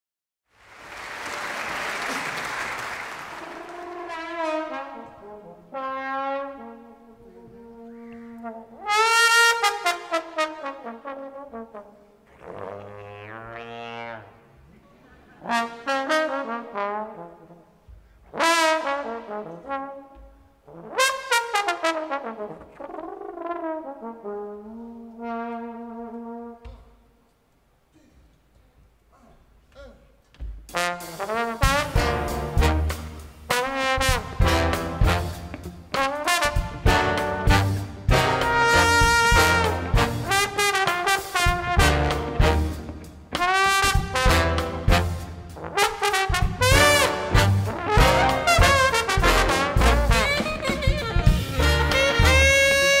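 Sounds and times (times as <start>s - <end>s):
audience applause: 0.6s - 4.1s
trombone solo: 3.4s - 7.0s, 7.6s - 14.5s, 15.4s - 17.6s, 18.3s - 20.1s, 20.7s - 26.6s, 30.7s - 53.0s.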